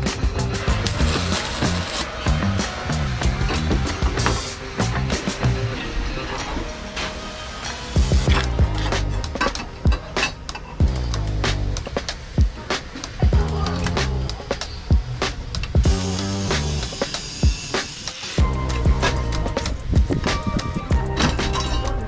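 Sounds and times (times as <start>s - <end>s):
music with beat and bass line: 0.0s - 5.7s, 8.0s - 10.2s, 10.8s - 12.6s, 13.2s - 17.6s, 18.4s - 22.0s.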